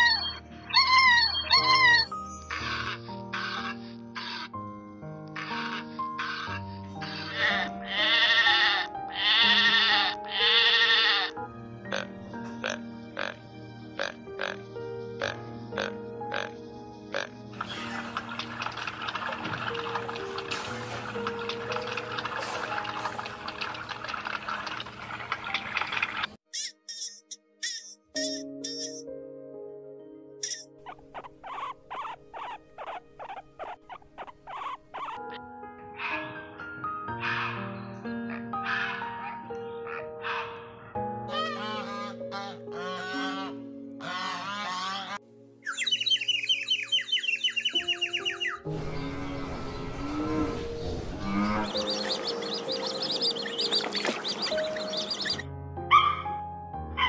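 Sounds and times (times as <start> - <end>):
squirrel chirping: 0.0 - 2.9, 30.4 - 35.2, 45.7 - 48.7, 51.6 - 55.4
bleating animal calls: 6.2 - 12.0
background music with ticking beat: 17.1 - 29.1.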